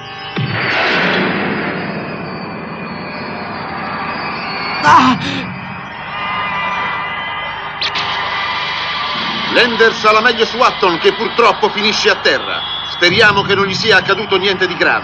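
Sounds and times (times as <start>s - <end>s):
man crying out: 4.8s - 5.5s.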